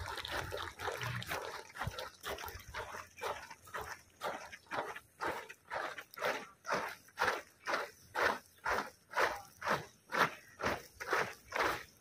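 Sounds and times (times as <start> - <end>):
marching footsteps: 0.0 - 12.0.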